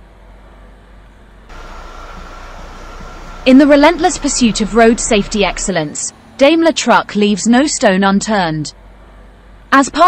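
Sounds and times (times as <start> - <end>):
vehicle interior rumble: 1.2 - 8.8
high whine: 1.5 - 8.0.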